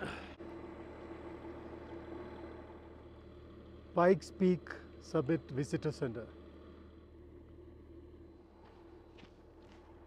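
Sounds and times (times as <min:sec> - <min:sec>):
train engine idling: 0:00.0 - 0:10.0.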